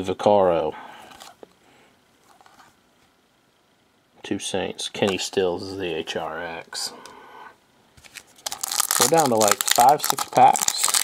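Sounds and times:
trading cards rustling: 8.0 - 11.0.

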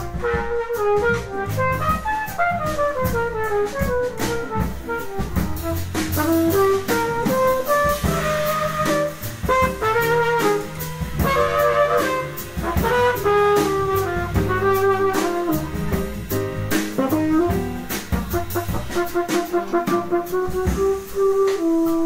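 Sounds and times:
bass: 0.0 - 22.0
drum kit: 0.0 - 22.0
piano: 0.0 - 22.0
trumpet melody: 0.0 - 22.0.

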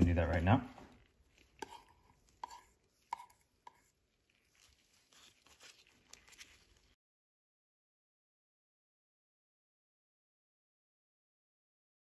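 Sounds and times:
soft rustling: 0.2 - 7.0.

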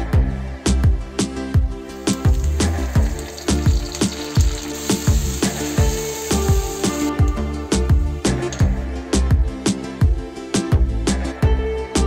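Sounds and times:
background music with steady beat: 0.0 - 12.0
hot oil sizzling in a frying pan: 1.8 - 7.4.

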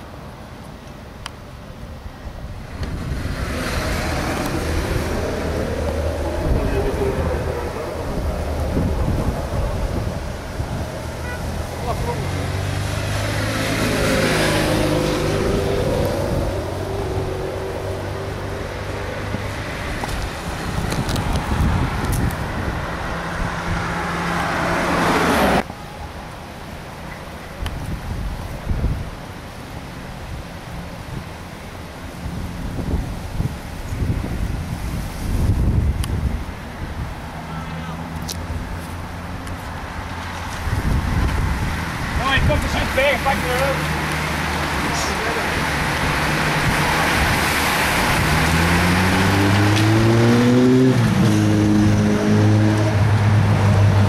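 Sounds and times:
cars passing close by: 0.0 - 54.0.

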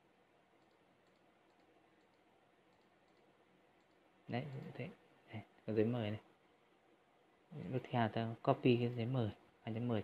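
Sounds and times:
low hiss: 0.0 - 10.0
faint computer mouse clicks: 0.6 - 4.7.

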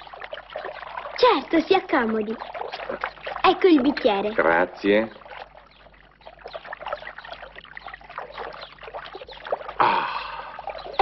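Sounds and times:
fountain water splashing: 0.0 - 11.0.

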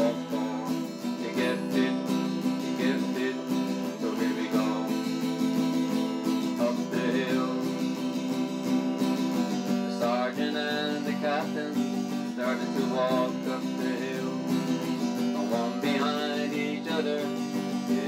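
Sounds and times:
strummed acoustic guitar: 0.0 - 18.0.

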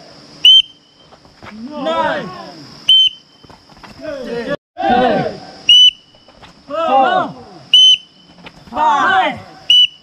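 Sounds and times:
sharp whistle blasts: 0.4 - 1.1, 2.9 - 3.5, 5.6 - 6.4, 7.7 - 8.3, 9.7 - 10.0
group shouting together: 1.6 - 2.7, 4.0 - 5.7, 6.7 - 7.7, 8.7 - 9.8.

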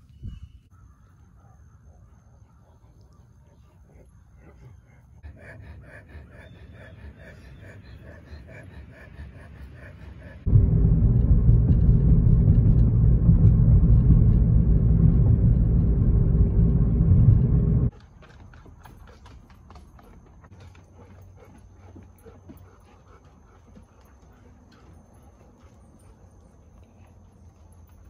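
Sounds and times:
car engine and road noise: 10.4 - 17.9
high whine: 10.5 - 17.9.

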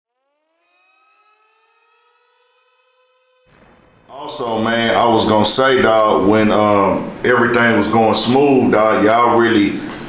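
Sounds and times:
rising synthetic tone: 0.1 - 5.1.

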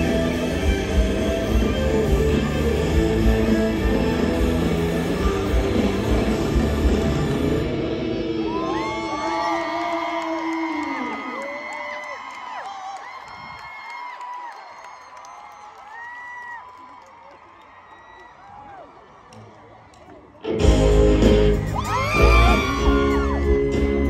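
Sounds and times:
live band electric guitar chord: 0.0 - 8.5, 20.4 - 24.0
crowd cheering and screaming: 0.0 - 24.0.

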